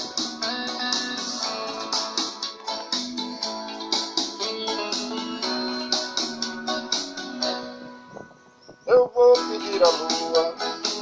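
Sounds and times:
steady beat: 0.0s - 7.3s, 9.4s - 11.0s
karaoke backing track: 0.0s - 11.0s.

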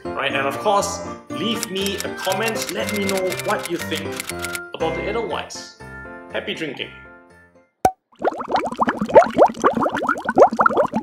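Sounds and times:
background music: 0.0s - 7.8s
sharp click: 1.6s - 4.6s
liquid pouring and gurgling: 7.9s - 11.0s.

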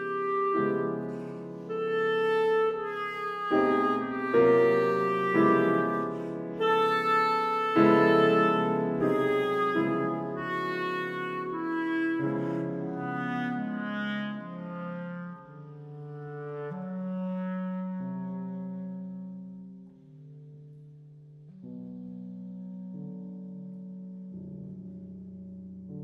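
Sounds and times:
clarinet: 0.0s - 25.0s
grand piano: 0.0s - 26.0s.

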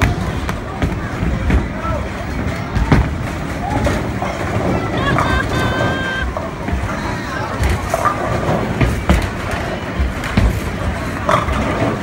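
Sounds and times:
bowling ball rolling rumble: 0.0s - 12.0s.

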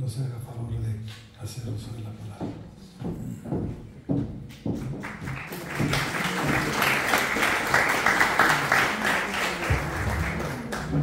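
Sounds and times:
audience applause: 5.0s - 11.0s.

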